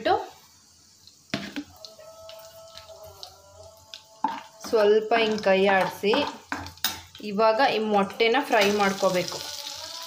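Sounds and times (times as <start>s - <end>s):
spices crackling in hot oil: 0.0s - 10.0s.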